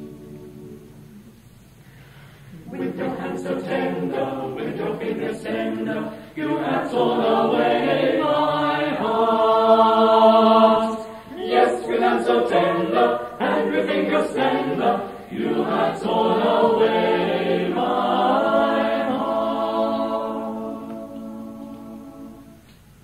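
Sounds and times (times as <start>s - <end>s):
choir singing a cappella: 0.0s - 1.4s, 2.4s - 22.7s.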